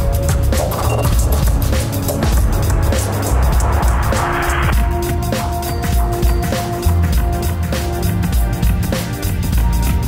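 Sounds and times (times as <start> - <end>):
electronic music with synth bass: 0.0 - 10.0
rushing noise swell: 2.8 - 4.8.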